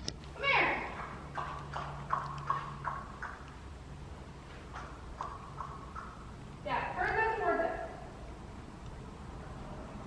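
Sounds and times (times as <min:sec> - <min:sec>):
horse hooves clip-clopping: 0:00.8 - 0:03.7.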